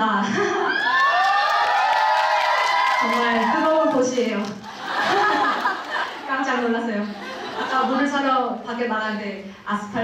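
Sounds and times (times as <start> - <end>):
audience cheering: 0.7 - 4.0.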